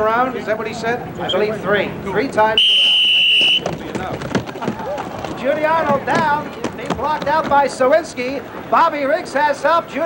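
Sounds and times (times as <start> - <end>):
referee's whistle blast: 2.6 - 3.7.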